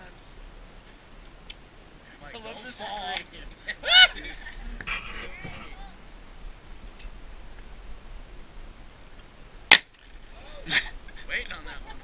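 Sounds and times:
gunshot: 0:09.7 - 0:10.0.

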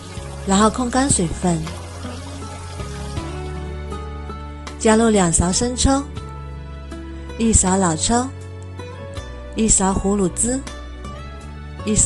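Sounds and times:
tap water running onto meat: 0:00.0 - 0:03.8
background music: 0:00.0 - 0:12.0.

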